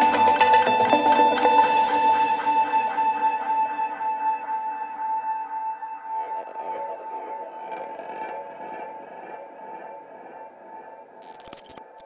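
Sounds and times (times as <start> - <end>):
ambient electronic music: 0.0 - 12.0
electric guitar: 0.0 - 12.0.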